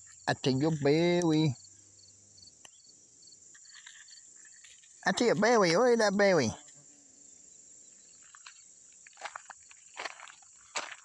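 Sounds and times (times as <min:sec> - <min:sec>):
insects chirring: 0:00.0 - 0:11.0
footsteps crunching on gravel: 0:08.2 - 0:11.0.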